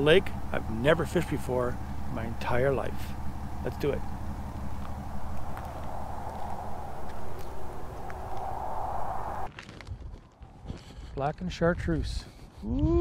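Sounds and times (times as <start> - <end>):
truck engine idling: 0.0 - 9.5
outdoor noise: 0.0 - 13.0.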